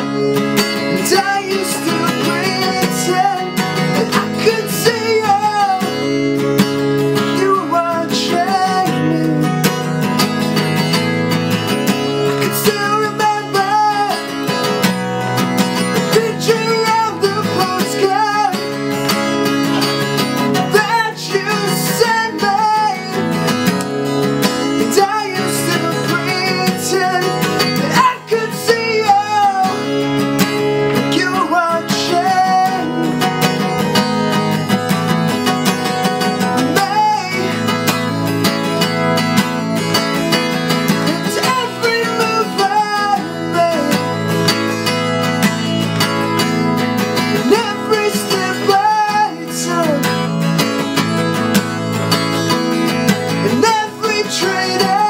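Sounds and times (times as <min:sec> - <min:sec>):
man singing: 0:00.0 - 0:51.3, 0:52.0 - 0:55.0
acoustic guitar strumming: 0:00.0 - 0:55.0.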